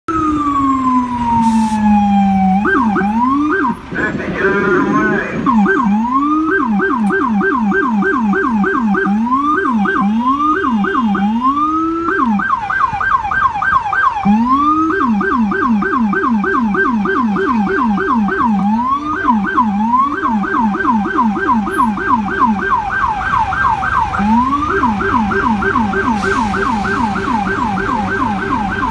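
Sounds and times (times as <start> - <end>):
police siren yelp and wail: 0.1 - 28.9.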